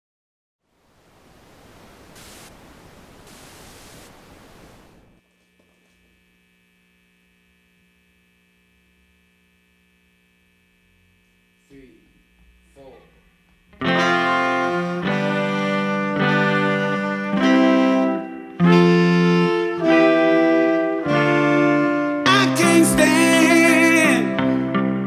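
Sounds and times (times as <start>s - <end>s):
thin high whine: 0.7s - 14.4s
electrical mains hum: 0.7s - 14.9s
rush of hiss: 2.1s - 2.6s.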